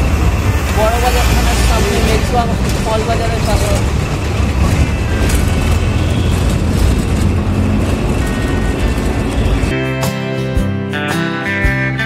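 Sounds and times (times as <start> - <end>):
bus engine and road noise: 0.0 - 10.5
guitar music: 7.2 - 12.0.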